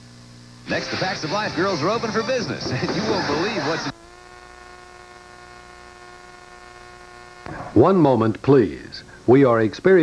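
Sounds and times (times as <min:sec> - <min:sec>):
steady electrical buzz: 0:00.0 - 0:10.0.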